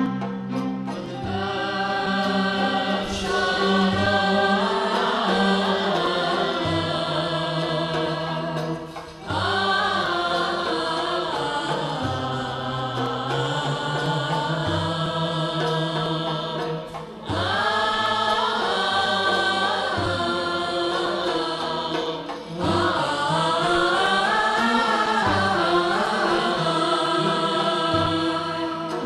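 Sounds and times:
violins: 0.0s - 29.0s
young voices singing melismatic phrases: 1.1s - 29.0s.

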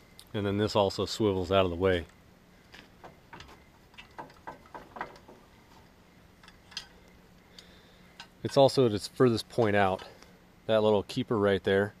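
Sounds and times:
faint metal clicks and taps: 2.7s - 8.6s.

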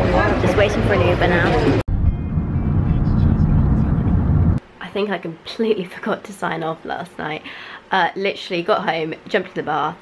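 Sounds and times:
vehicle interior rumble: 1.9s - 4.6s
woman speaking: 4.8s - 10.0s.

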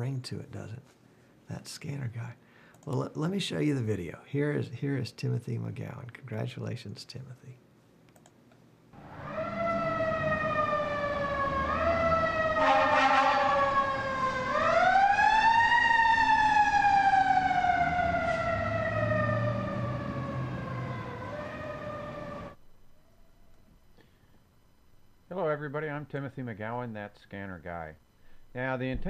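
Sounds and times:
fire engine siren wailing: 9.0s - 22.6s
short siren blast: 9.0s - 22.6s.

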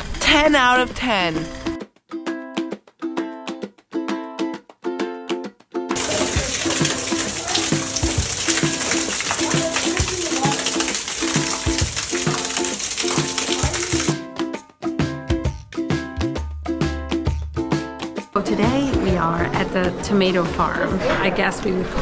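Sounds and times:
plucked background music: 0.8s - 21.0s
water splashing: 6.0s - 14.2s.

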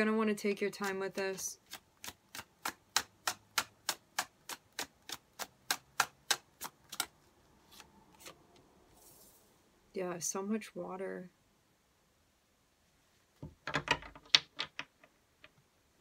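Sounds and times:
cards being shuffled: 6.6s - 9.5s
soft card handling: 6.9s - 9.5s.

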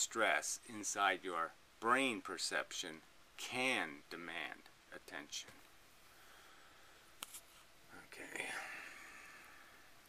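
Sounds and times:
man whispering: 7.8s - 9.7s.

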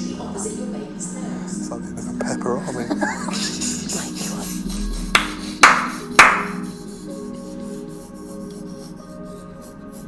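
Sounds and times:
background music: 0.0s - 10.0s
sharp hand claps: 5.2s - 6.6s.

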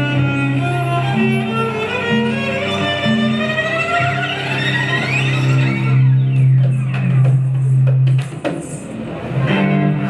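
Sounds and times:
cello played with bow: 0.0s - 7.2s, 9.4s - 10.0s.

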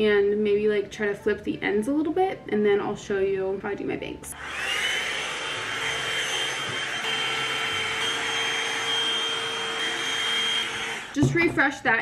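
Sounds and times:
blow-dry brush running: 4.3s - 11.7s.

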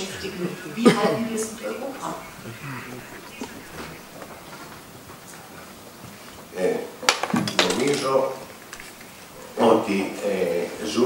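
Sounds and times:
person's hesitant voice: 0.0s - 4.5s.

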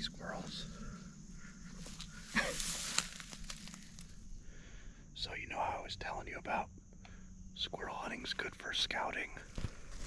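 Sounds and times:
low whispered voices: 0.0s - 1.2s, 5.1s - 9.6s.

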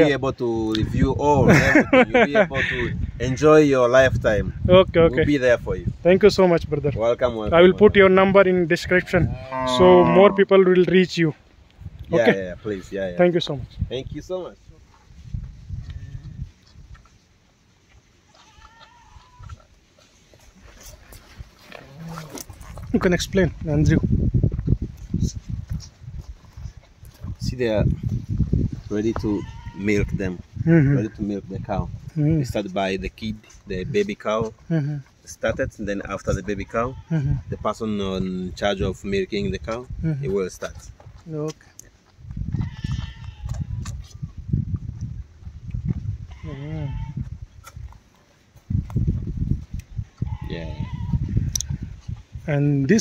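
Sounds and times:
calf bleating: 9.2s - 10.4s, 15.8s - 16.4s, 18.3s - 19.6s, 29.2s - 30.2s, 36.6s - 37.6s, 42.6s - 43.8s, 46.3s - 47.3s, 50.2s - 51.5s.

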